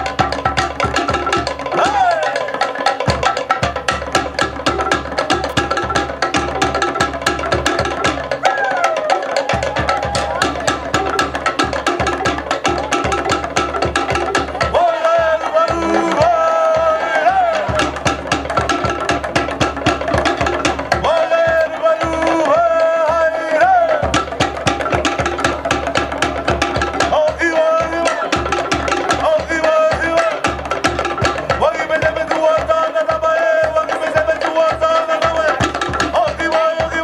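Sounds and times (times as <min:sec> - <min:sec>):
drum ensemble rapid beat: 0:00.0 - 0:37.0.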